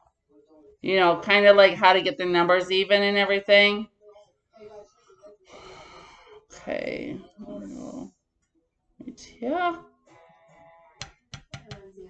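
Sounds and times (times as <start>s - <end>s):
fingernails tapping on vinyl record: 11.0s - 11.9s.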